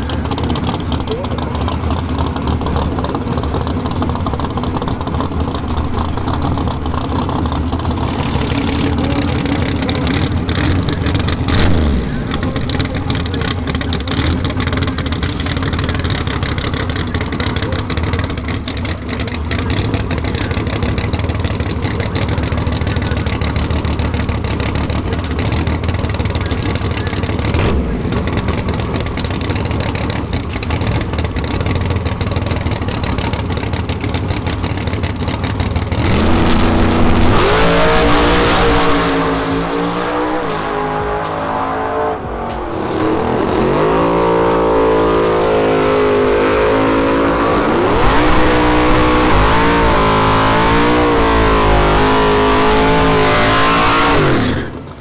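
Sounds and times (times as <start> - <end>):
drag car engine idling and revving: 0.0 - 55.0.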